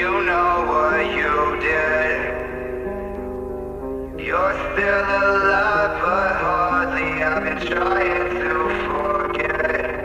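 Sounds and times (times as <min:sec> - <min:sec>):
man singing long note: 0:00.0 - 0:02.9, 0:04.2 - 0:10.0
melodic instrumental backing: 0:00.0 - 0:10.0.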